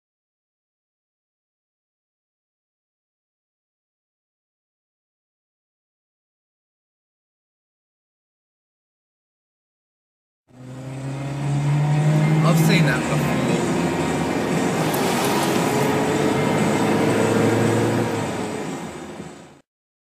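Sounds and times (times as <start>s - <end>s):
car engine accelerating: 10.5s - 19.6s
road noise: 10.5s - 19.6s.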